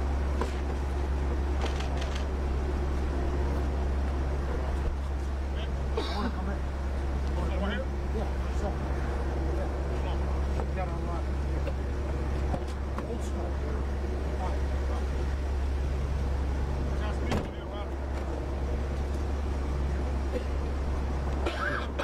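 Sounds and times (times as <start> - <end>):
van engine idling: 0.0 - 22.0
faint voices talking: 1.8 - 22.0.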